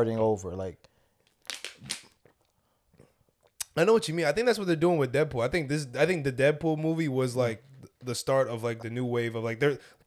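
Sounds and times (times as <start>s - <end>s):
plastic water bottle crinkling: 1.3s - 2.3s.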